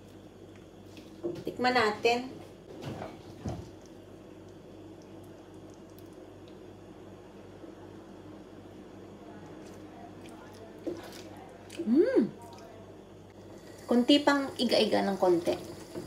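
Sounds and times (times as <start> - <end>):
low steady hum: 0.0 - 16.0
sauce bubbling and popping: 3.3 - 6.8
person humming mm: 11.8 - 12.4.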